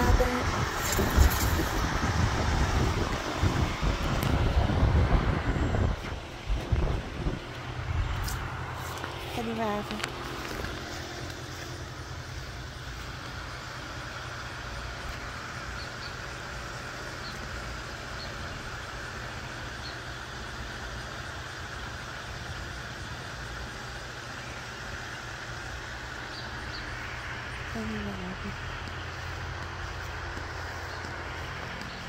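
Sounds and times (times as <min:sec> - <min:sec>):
low rumble: 0:00.0 - 0:13.9.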